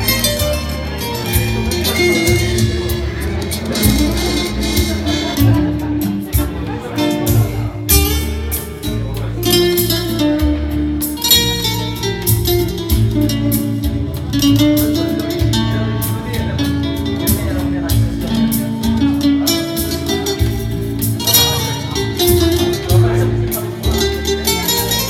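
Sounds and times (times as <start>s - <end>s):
classical guitar plucked and strummed: 0.0s - 25.0s
electronic organ chords and bass: 0.0s - 25.0s.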